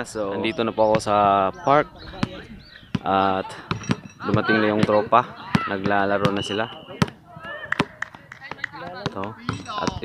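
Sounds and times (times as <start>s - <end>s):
basketball bouncing on hard court: 2.2s - 10.0s.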